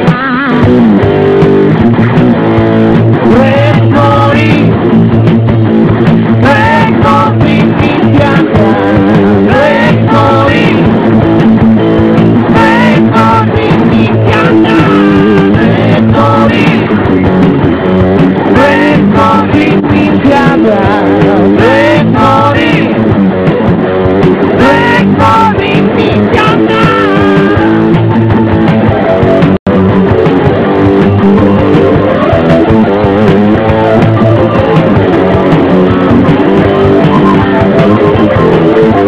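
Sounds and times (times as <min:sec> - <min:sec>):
electric guitar: 0:00.0 - 0:39.0
rock band playing live: 0:00.0 - 0:39.0.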